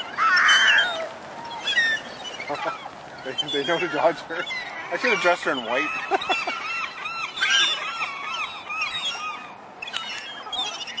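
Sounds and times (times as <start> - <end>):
gulls calling: 0.0 - 11.0.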